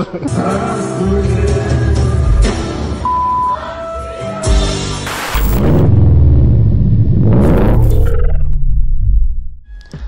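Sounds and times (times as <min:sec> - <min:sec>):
bass-heavy intro music: 0:04.5 - 0:10.0
whoosh: 0:05.1 - 0:09.7.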